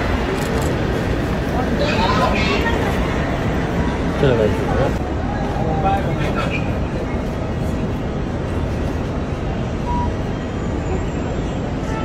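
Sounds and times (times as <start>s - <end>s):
short beep: 9.8s - 10.2s.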